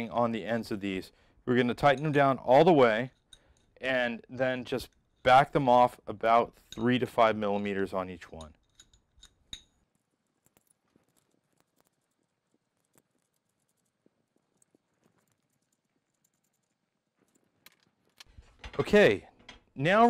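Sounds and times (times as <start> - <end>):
metal parts clicking on bench: 6.6 - 9.8, 15.7 - 19.8.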